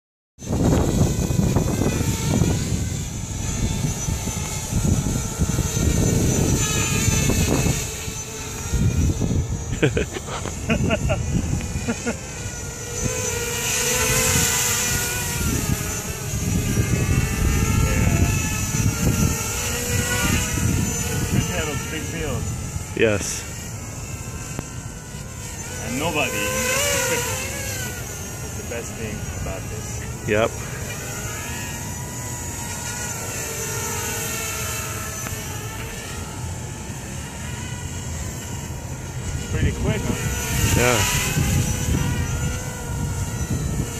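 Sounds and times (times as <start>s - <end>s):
drone motors whining: 0.4s - 43.9s.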